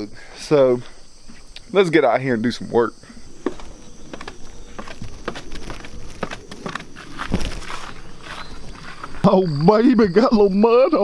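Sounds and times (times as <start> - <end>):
crickets chirping: 0.0 - 11.0
footsteps on wooden porch: 0.8 - 1.6, 3.1 - 9.3.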